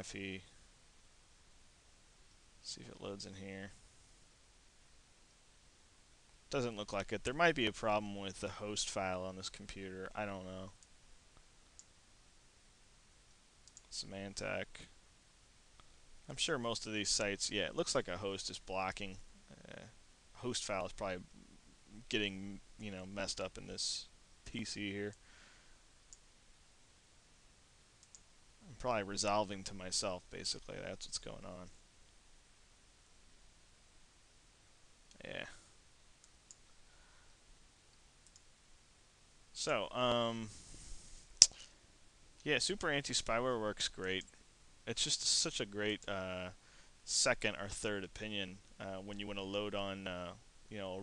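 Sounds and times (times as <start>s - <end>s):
faint hiss: 0.0s - 51.0s.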